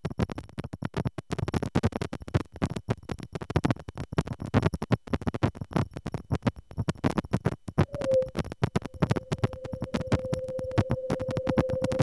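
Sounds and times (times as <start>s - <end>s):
crackly synthesized static: 0.2s - 12.0s
steady mid-pitched tone: 7.8s - 12.0s.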